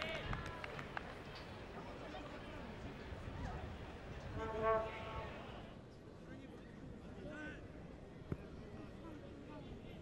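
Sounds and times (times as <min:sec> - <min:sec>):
stadium ambience: 0:00.0 - 0:10.0.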